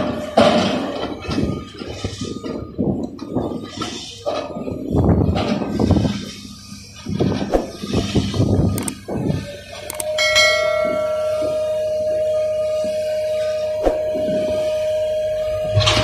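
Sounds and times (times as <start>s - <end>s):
rumbling machinery: 0.0s - 16.0s
steady ringing tone: 0.0s - 16.0s
click: 8.8s - 9.0s, 9.9s - 10.1s
bell ding: 10.0s - 11.8s.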